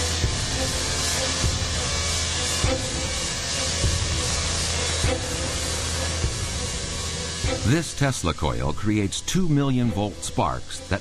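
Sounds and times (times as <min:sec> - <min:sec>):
buzzing hiss of spark discharge: 0:00.0 - 0:11.0.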